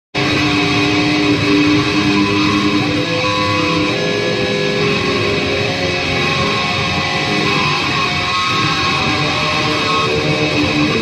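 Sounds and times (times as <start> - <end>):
distorted electric guitar shred: 0.1 - 11.0.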